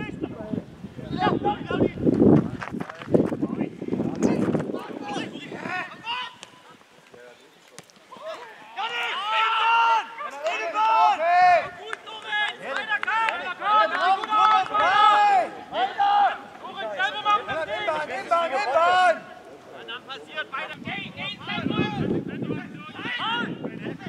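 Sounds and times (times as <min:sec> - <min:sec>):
voices shouting outdoors: 0:00.0 - 0:02.1, 0:03.5 - 0:24.0.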